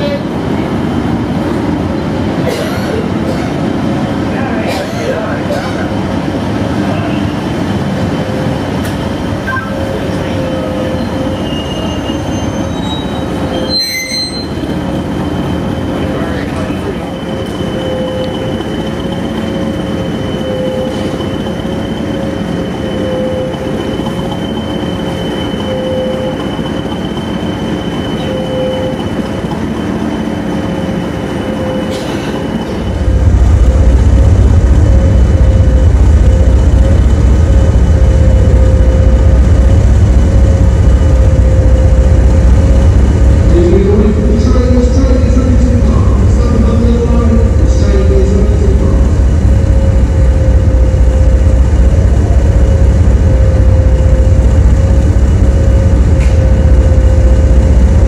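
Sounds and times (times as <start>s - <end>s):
train rumbling: 0.0s - 58.0s
train wheels and brakes squealing: 6.8s - 33.3s
diesel engine rumbling: 30.7s - 58.0s.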